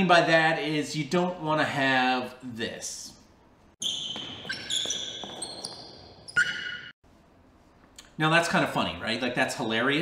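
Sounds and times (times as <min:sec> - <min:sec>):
squeaky stepping tones: 0:03.8 - 0:06.9.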